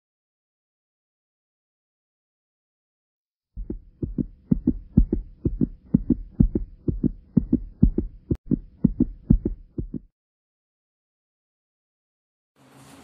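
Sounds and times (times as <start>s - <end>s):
fast heartbeat through speaker: 3.6s - 10.1s.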